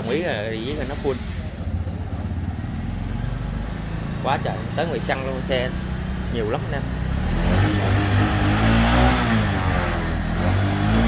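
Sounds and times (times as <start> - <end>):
motorcycle engine idling: 0.0 - 7.3.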